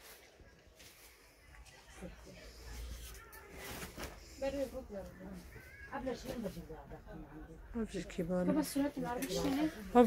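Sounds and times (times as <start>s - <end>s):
quiet indistinct voices talking: 0.0s - 10.0s.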